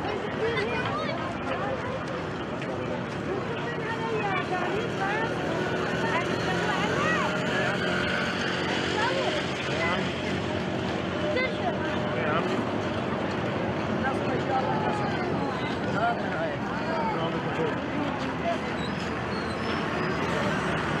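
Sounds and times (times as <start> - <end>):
crowd voices chattering: 0.0 - 21.0
road traffic rumble: 0.0 - 21.0.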